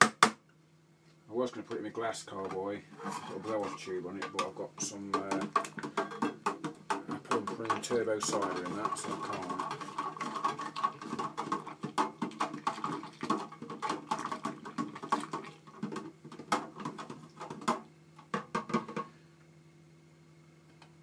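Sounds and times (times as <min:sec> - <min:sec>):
faint steady hum: 0:00.1 - 0:21.0.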